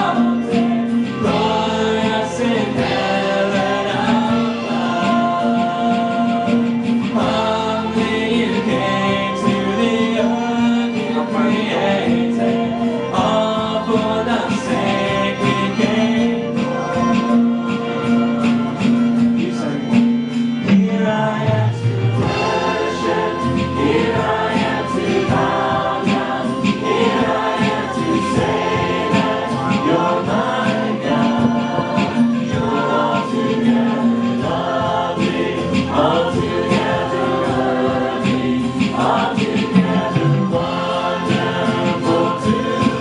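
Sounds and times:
congregation singing: 0.0 - 43.0
sustained keyboard notes: 0.0 - 43.0.

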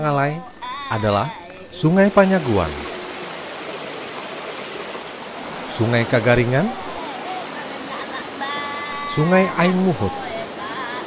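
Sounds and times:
stream running over rocks: 0.1 - 11.0.

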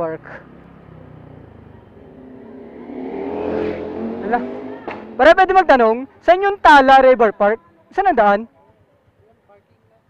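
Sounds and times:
motorcycle engine passing: 0.0 - 7.3.

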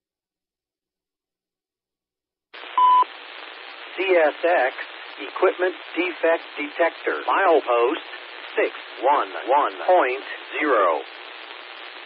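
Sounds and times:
radio static hiss: 2.6 - 12.0
synthesized voice over radio: 3.9 - 11.2.

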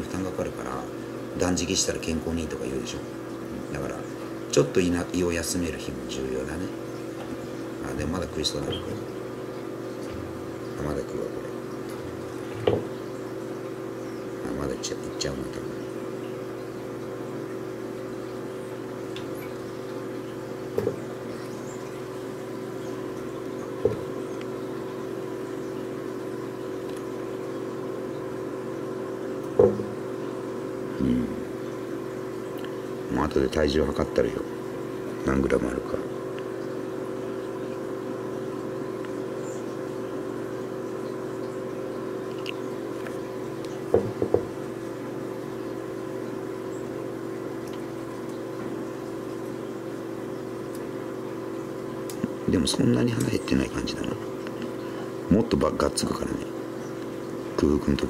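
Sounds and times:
steady mechanical hum: 0.0 - 58.0
short knocks: 12.0 - 12.9, 29.6 - 30.0, 43.9 - 44.6.

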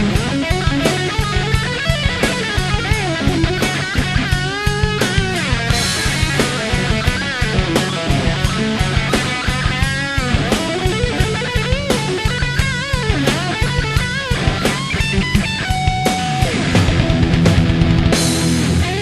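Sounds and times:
drum beat: 0.0 - 19.0
electric guitar rock lead: 0.0 - 19.0.

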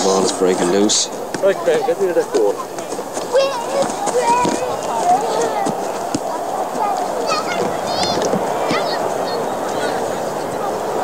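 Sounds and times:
children calling out: 1.4 - 11.0.

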